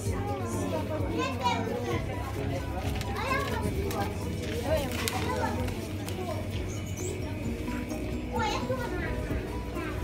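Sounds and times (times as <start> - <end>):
indistinct voices talking: 0.0 - 10.0
child's voice: 0.2 - 2.0, 3.1 - 4.1, 5.1 - 10.0.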